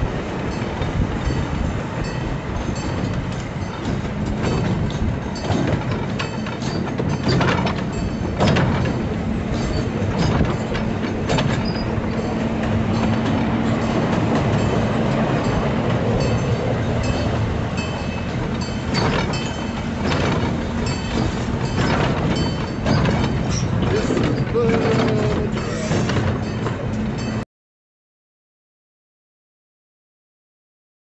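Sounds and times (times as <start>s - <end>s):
train wheels rumbling on rails: 0.0s - 27.4s
train wheel clacks: 0.3s - 27.4s.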